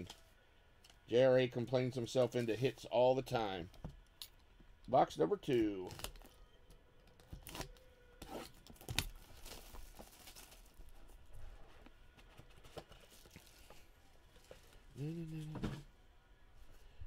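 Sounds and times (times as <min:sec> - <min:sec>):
plastic film tearing and crinkling: 0:05.8 - 0:06.4, 0:07.2 - 0:11.0.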